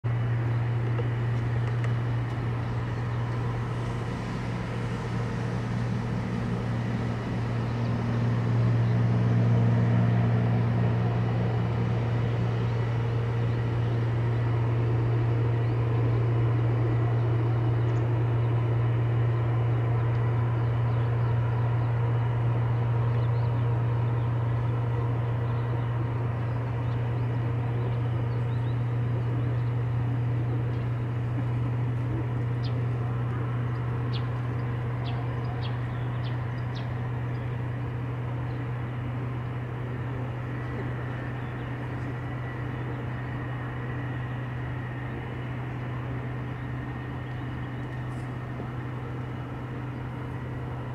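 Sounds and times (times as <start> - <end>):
low mechanical drone: 0.0 - 50.9.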